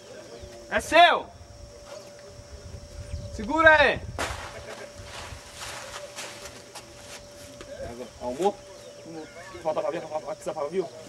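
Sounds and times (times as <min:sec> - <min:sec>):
faint steady hum: 0:00.0 - 0:11.0
wind rumbling on microphone: 0:01.2 - 0:06.0.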